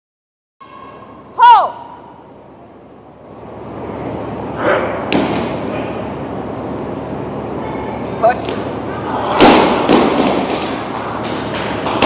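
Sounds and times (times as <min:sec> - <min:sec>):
steady rumble and hiss: 0:00.7 - 0:12.0.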